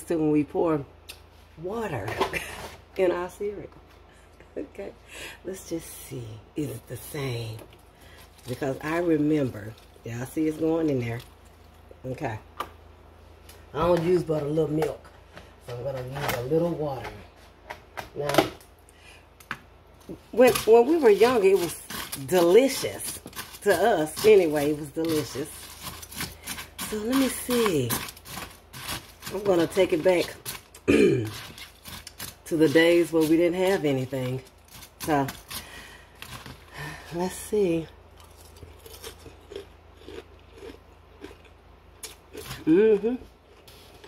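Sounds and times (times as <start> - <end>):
person chewing cereal: 21.2 - 32.4, 38.1 - 42.7, 43.4 - 44.0.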